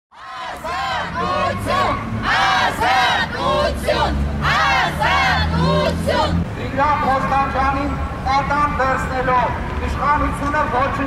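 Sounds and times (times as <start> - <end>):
crowd chanting in unison: 0.1 - 6.5.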